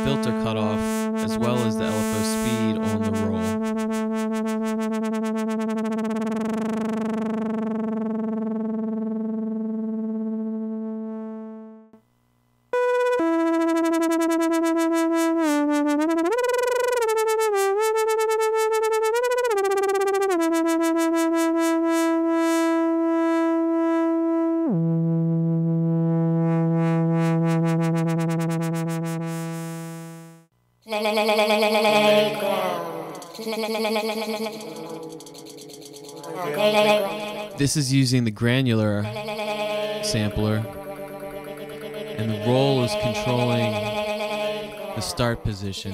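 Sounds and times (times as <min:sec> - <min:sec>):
synthesizer held notes: 0:00.0 - 0:12.0, 0:12.7 - 0:45.9.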